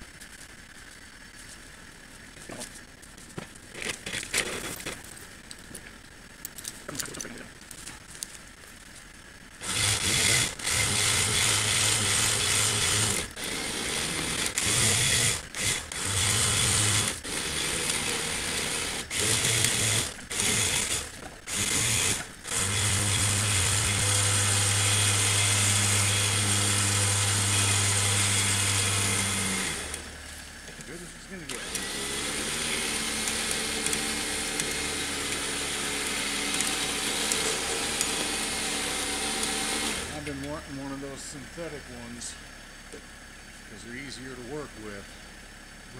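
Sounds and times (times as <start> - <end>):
low mechanical hum: 0.0 - 45.9
electric winch motor running: 9.6 - 42.4.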